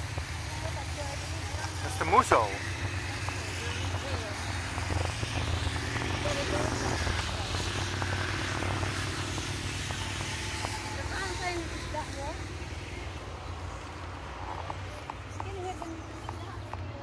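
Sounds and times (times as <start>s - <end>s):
motorcycles riding past: 0.0s - 17.0s.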